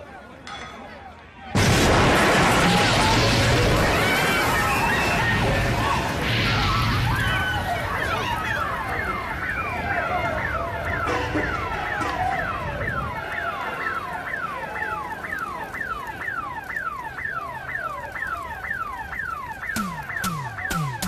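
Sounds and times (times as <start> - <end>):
car alarm whooping: 2.8 - 21.0
drum beats: 19.8 - 21.0.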